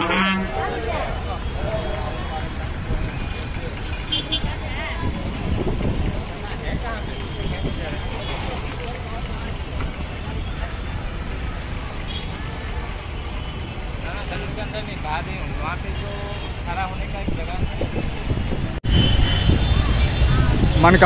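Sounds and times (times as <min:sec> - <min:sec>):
traffic rumble: 0:00.0 - 0:21.0.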